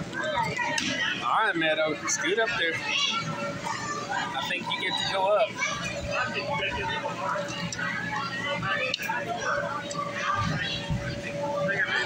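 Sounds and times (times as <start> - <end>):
children and adults talking: 0.0 - 12.0.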